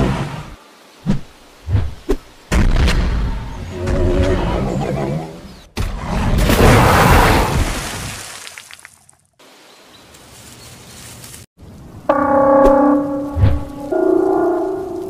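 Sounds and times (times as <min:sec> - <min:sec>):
big water splash: 0:06.4 - 0:08.9
held pitched tones: 0:12.0 - 0:15.0.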